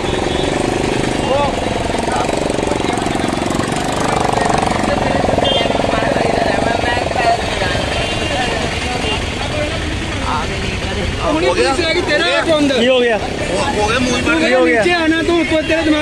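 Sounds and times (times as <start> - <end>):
auto-rickshaw engine idling: 0.0 - 16.0
people's voices: 0.0 - 16.0.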